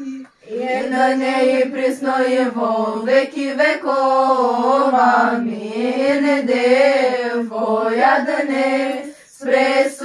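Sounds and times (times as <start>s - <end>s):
girls singing unaccompanied in unison: 0.0s - 10.0s.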